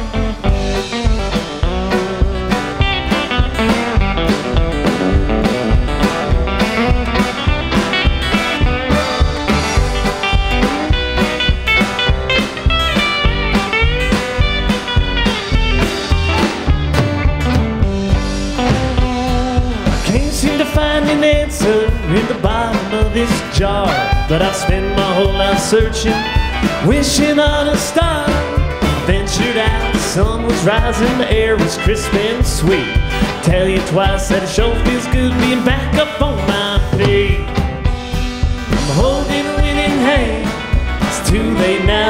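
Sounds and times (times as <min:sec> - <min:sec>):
fiddle: 0:00.0 - 0:35.4
acoustic and electric guitars: 0:00.0 - 0:42.0
drum kit steady beat: 0:00.0 - 0:42.0
upright bass: 0:00.0 - 0:42.0.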